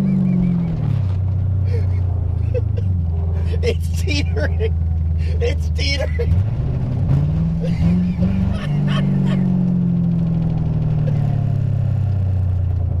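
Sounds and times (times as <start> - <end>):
car engine revving: 0.0 - 13.0.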